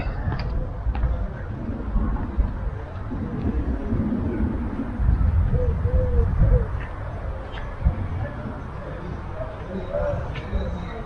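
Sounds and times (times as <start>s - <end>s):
steady low rumble: 0.0s - 11.0s
bird hooting call: 5.5s - 7.7s.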